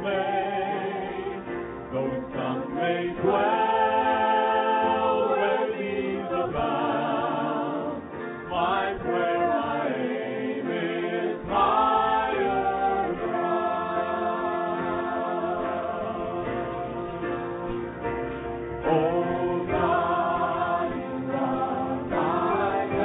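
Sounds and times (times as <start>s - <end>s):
group singing a gospel hymn: 0.0s - 23.0s.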